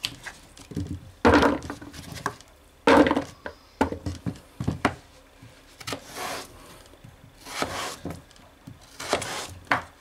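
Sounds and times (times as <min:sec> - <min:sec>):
knife slicing potato on board: 0:07.4 - 0:08.2, 0:08.9 - 0:09.6.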